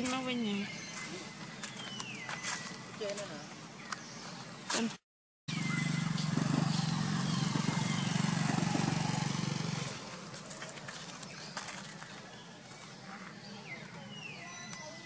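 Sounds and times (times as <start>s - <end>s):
vehicle engine humming: 5.5s - 15.0s.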